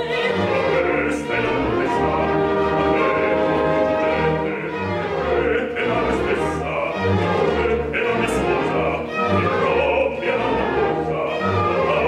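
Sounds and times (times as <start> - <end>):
man singing: 0.0 - 12.0
operatic singing: 0.0 - 12.0
orchestra strings: 0.0 - 12.0.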